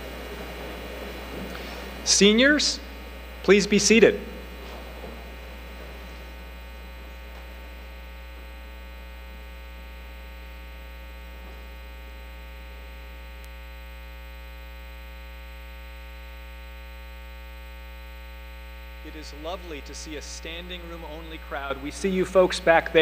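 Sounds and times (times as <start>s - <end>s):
electrical mains hum: 0.0s - 23.0s.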